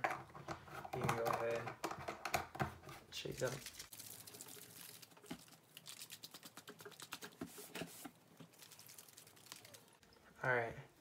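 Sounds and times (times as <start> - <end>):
plastic paint jar being shaken: 3.2 - 10.0.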